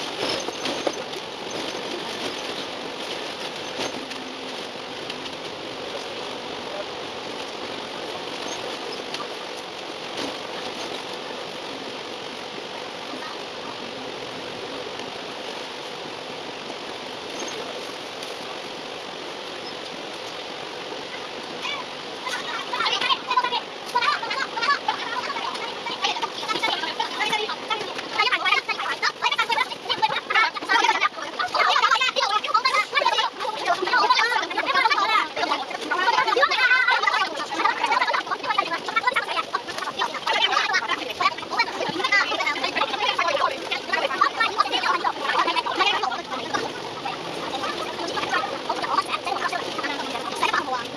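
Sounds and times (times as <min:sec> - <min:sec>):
sped-up bus running hiss: 0:01.0 - 0:30.8
sped-up squeaky voices babbling: 0:20.9 - 0:50.9.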